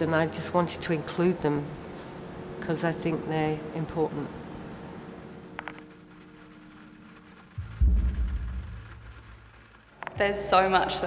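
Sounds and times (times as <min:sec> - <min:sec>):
low droning hum: 0:00.0 - 0:11.0
deep rumbling boom: 0:07.6 - 0:11.0.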